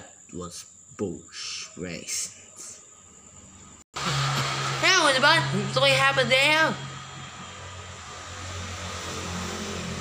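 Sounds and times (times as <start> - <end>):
low hum: 2.9 - 10.0.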